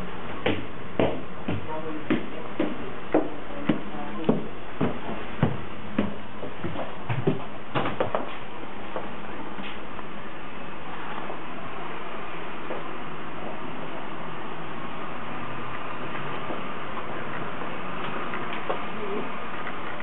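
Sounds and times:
footsteps climbing stairs: 0:00.2 - 0:09.9, 0:15.8 - 0:20.0.

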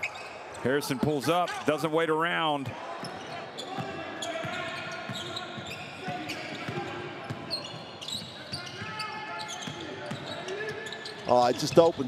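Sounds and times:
sneaker squeaks: 0:00.0 - 0:00.7, 0:03.0 - 0:12.0
players calling out: 0:00.2 - 0:12.0.

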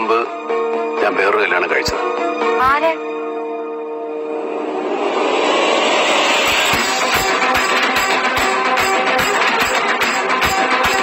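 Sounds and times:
background music: 0:00.0 - 0:11.0
dense noisy swell: 0:04.0 - 0:07.8.

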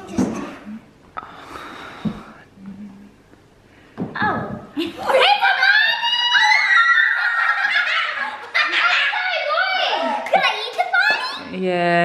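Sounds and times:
girls shrieking and laughing: 0:04.8 - 0:10.3.

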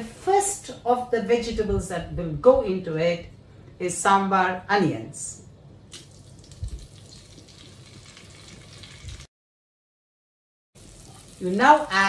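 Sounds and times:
onions sizzling in hot oil: 0:10.8 - 0:12.0.

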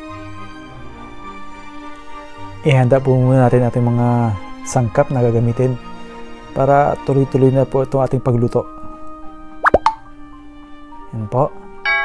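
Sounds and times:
soft background music: 0:00.0 - 0:12.0
plop sound effect: 0:09.6 - 0:10.0.

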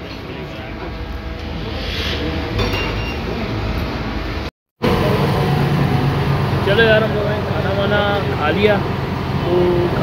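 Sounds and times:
low rumble: 0:00.7 - 0:08.4.

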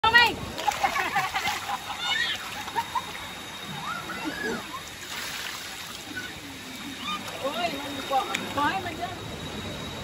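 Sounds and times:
children crying out excitedly: 0:01.6 - 0:03.0, 0:03.7 - 0:05.1, 0:06.0 - 0:07.4
child squealing: 0:02.0 - 0:02.5.

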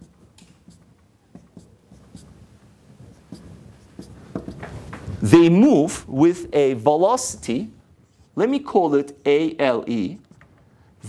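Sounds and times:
marker pen writing on whiteboard: 0:00.0 - 0:06.6, 0:07.2 - 0:10.8.

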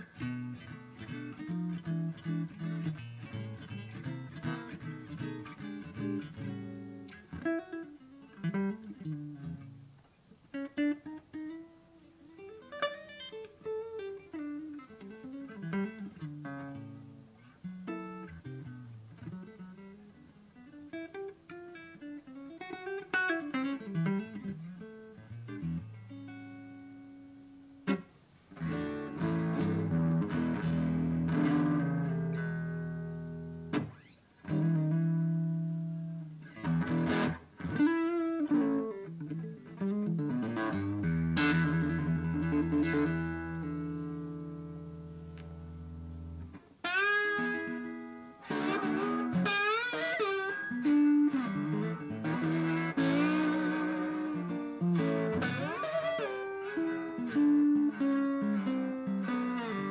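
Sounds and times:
electric guitar through an amp: 0:00.0 - 0:59.9.

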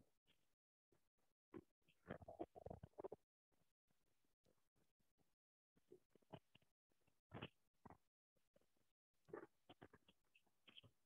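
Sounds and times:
faint muffled sounds: 0:05.8 - 0:11.0.

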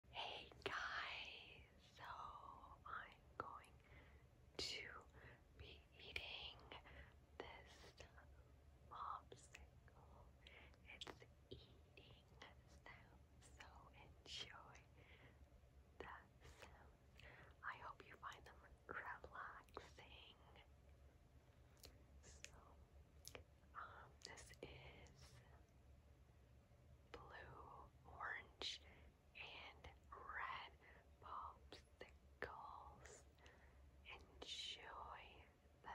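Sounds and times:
woman whispering: 0:00.1 - 0:15.3, 0:16.0 - 0:20.7, 0:21.8 - 0:25.7, 0:27.1 - 0:35.9.

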